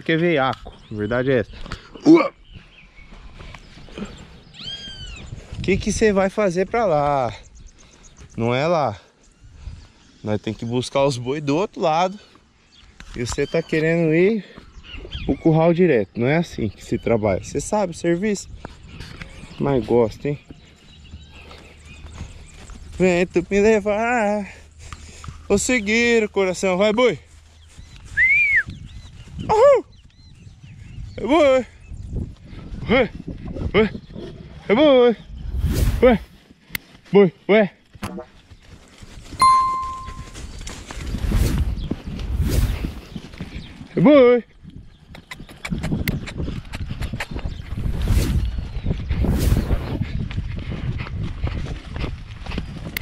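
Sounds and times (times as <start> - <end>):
hoofbeats on grass: 0.0 - 8.7, 16.4 - 34.6, 36.3 - 53.0
wind rumble on microphone: 2.4 - 8.3, 27.6 - 36.4, 40.1 - 53.0.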